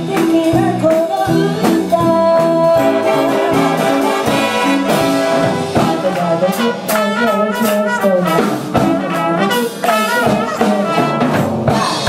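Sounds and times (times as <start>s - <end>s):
jazz big band playing: 0.0s - 12.0s.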